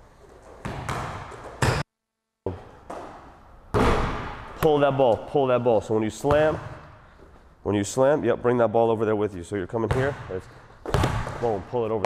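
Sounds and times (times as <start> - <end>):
basketball bouncing on court floor: 0.6 - 1.8, 6.2 - 6.9, 9.9 - 11.7.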